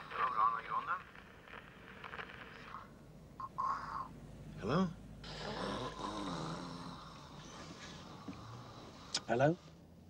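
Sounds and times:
man snoring: 5.2s - 9.2s.

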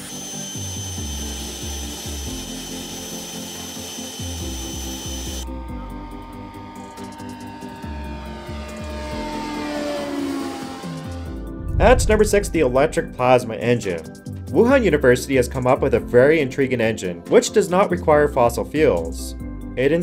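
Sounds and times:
thruster air rush with whine: 11.4s - 13.3s.

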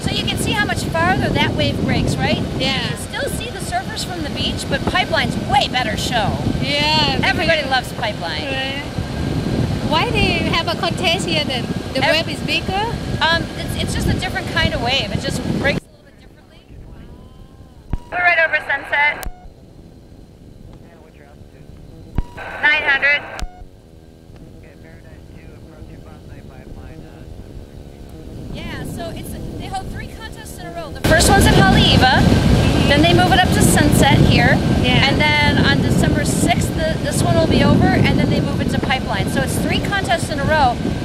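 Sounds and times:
voice sounds: 0.0s - 8.9s, 16.7s - 19.3s, 22.4s - 23.5s, 28.6s - 40.8s
microlight engine and propeller: 0.0s - 41.0s
wind: 0.0s - 41.0s.

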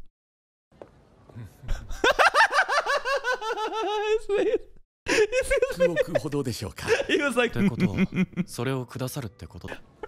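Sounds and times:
man laughing hard: 1.9s - 6.3s, 6.9s - 8.5s.

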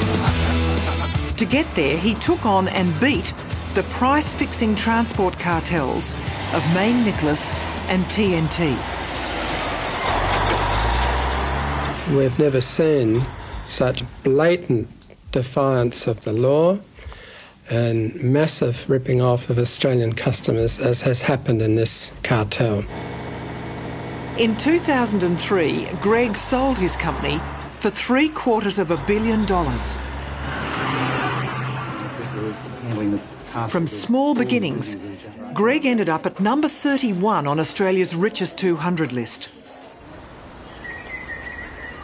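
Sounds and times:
truck diesel engine rumble: 0.0s - 14.2s, 22.8s - 33.8s
road noise: 0.0s - 14.6s, 22.1s - 36.1s, 36.8s - 42.0s.

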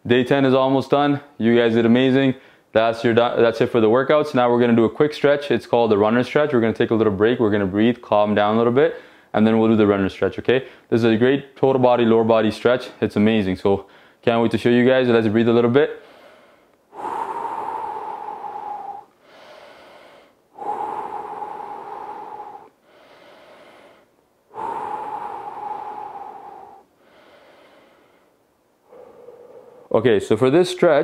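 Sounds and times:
man breathing deeply: 9.0s - 9.3s, 13.9s - 14.2s, 16.0s - 30.0s.

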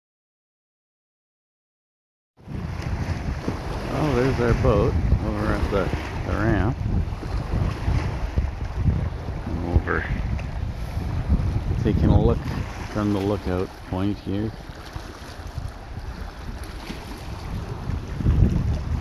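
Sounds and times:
choppy lake water: 2.4s - 19.0s
wind buffeting microphone: 2.4s - 19.0s.

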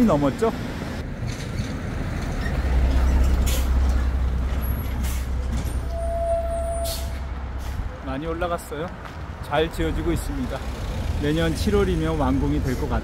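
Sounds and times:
heavy vehicle engine rumble: 0.0s - 13.0s
short high tone: 5.9s - 7.1s.

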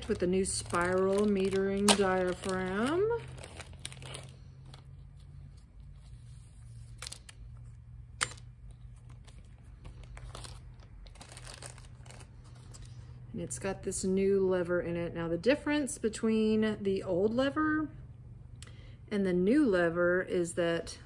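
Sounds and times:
plastic bag crinkling: 0.0s - 5.0s, 8.3s - 12.9s.

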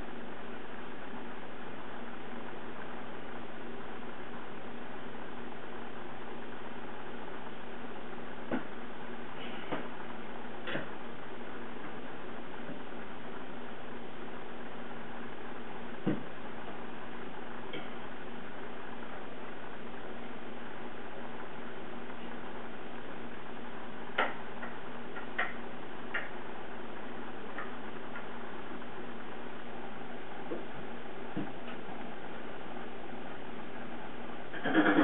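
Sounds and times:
faint low hum: 0.0s - 35.0s.

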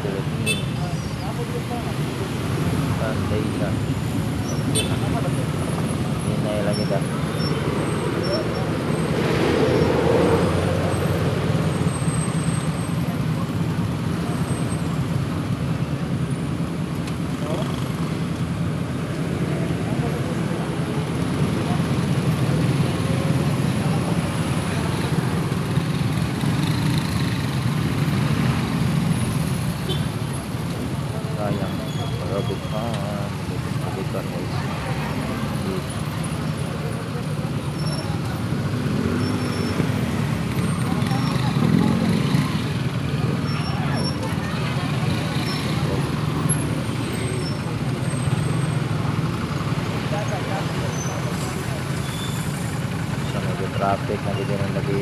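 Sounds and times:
motorcycle and car engines rumbling: 0.0s - 55.0s.

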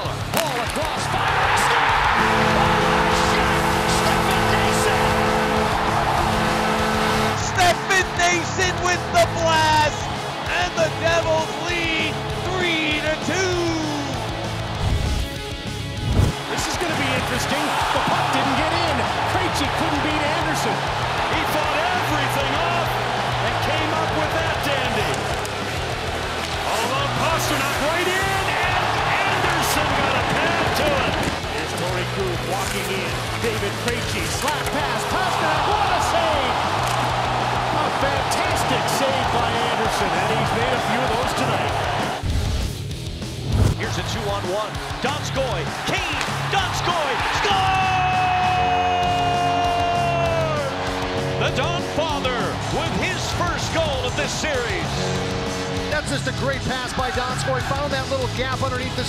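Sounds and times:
arena crowd noise: 0.0s - 42.3s, 43.2s - 59.0s
crowd cheering: 0.0s - 42.3s, 43.2s - 59.0s
arena celebration music: 0.0s - 59.0s
goal horn blaring: 1.9s - 8.9s.

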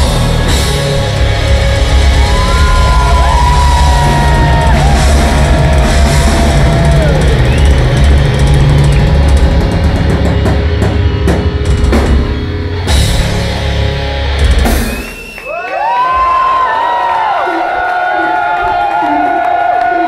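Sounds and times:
metal band playing live: 0.0s - 15.2s
pounding drum kit: 0.0s - 15.4s
crowd cheering: 0.0s - 20.0s
whistles from crowd: 7.0s - 8.2s, 14.7s - 16.6s.

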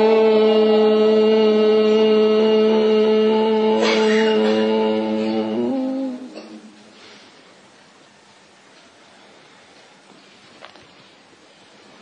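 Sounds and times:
voice chanting a note: 0.0s - 6.8s
faint room hiss: 0.0s - 12.0s.

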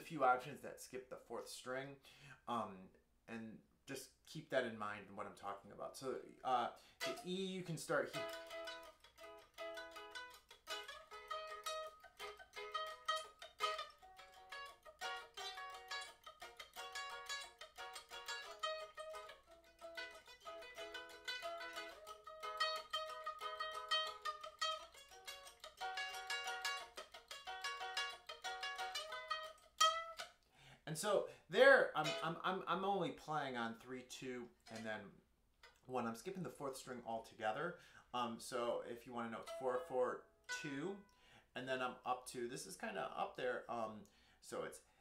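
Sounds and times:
ukulele plucked chords: 7.0s - 30.3s, 31.9s - 32.8s, 39.3s - 41.1s.

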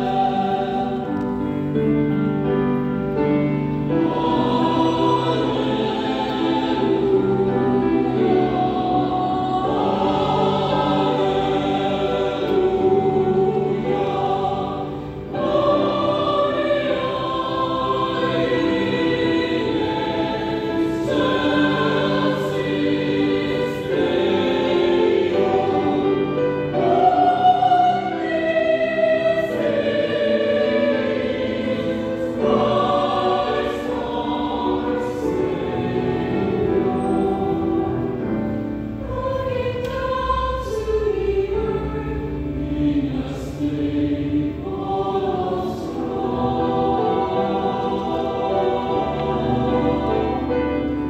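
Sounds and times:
choir breath: 0.0s - 1.8s, 2.6s - 51.0s
choir singing: 0.0s - 51.0s.

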